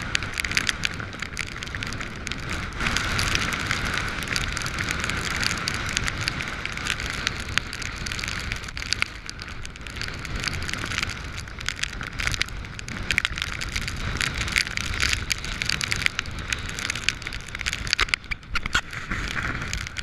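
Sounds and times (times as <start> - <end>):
rain hitting waterproof: 0.0 - 20.0
wind noise on microphone: 0.0 - 20.0.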